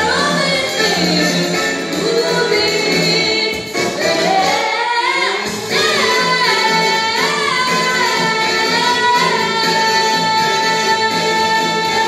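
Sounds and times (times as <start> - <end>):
girl singing jazz vocal: 0.0 - 12.0
instrumental backing track: 0.0 - 12.0.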